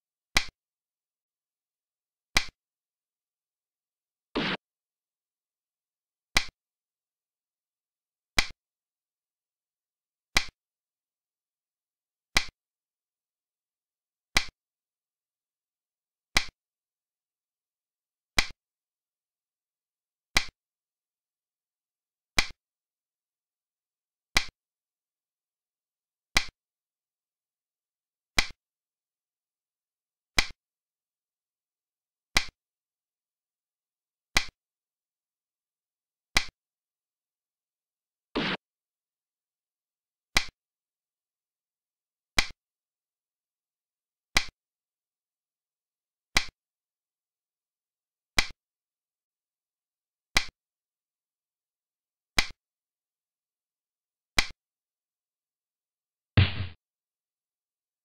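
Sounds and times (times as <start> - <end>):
game piece click effect: 56.4 - 56.8.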